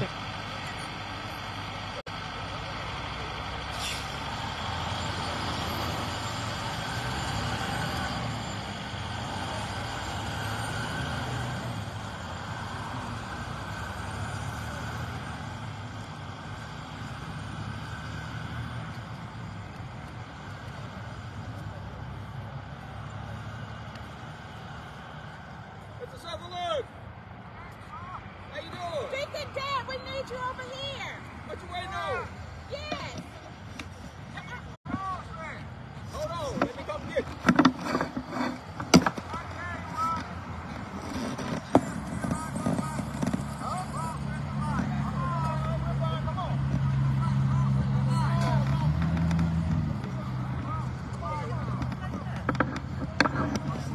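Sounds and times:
road traffic passing: 0.0 - 53.9
truck rumble: 0.0 - 53.9.

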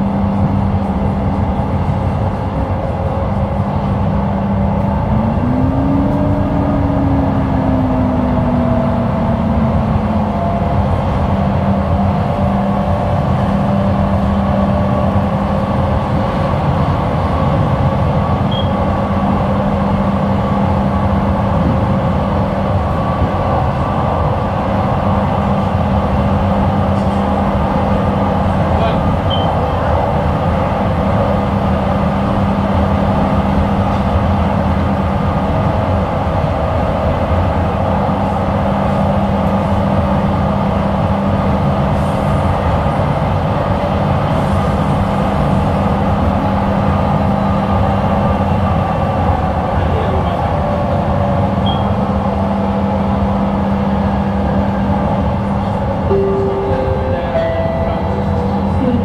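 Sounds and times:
train wheels rumbling on rail: 0.0 - 59.0.

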